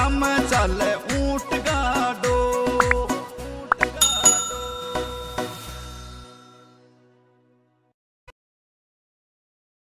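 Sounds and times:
folk song: 0.0s - 5.6s
bright bell chime: 4.0s - 6.8s.

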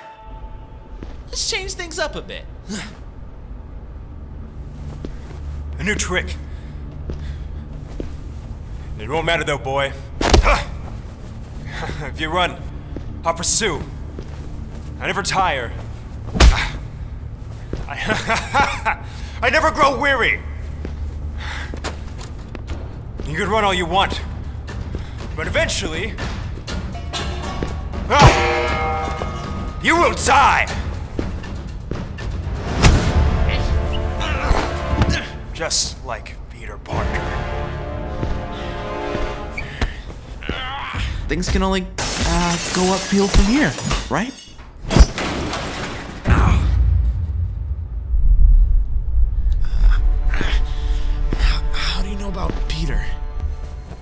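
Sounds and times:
deep bass rumble: 46.3s - 53.9s
low hum: 46.3s - 54.0s.

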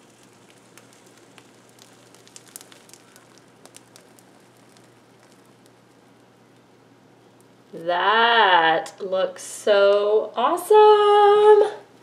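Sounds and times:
mat peeling off soap crackling: 0.0s - 7.9s.

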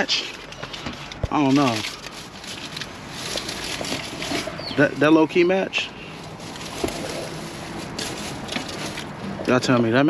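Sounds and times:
plastic bag rustling: 0.0s - 9.7s.

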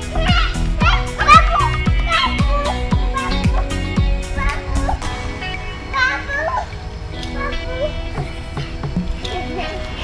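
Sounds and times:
background music with held tones: 0.0s - 10.0s
children calling and shouting: 0.0s - 10.0s.

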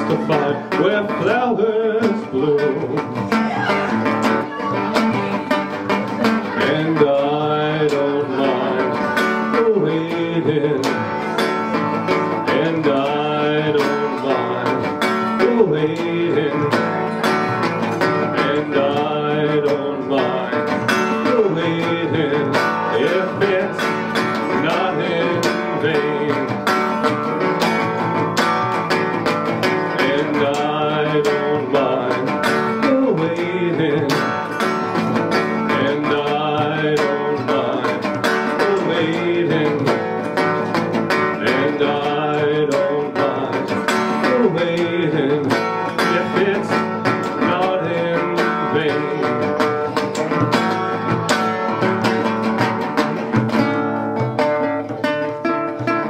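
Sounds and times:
resonator guitar plucked notes: 0.0s - 56.0s.

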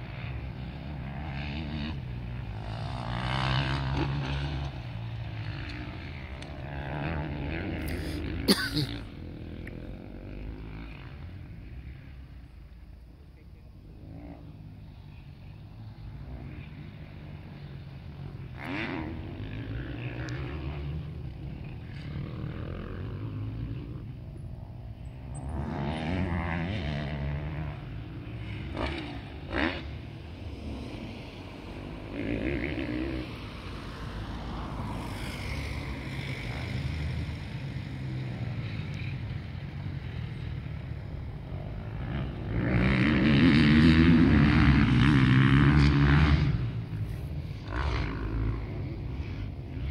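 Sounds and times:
motorcycle engines revving: 0.0s - 49.9s.

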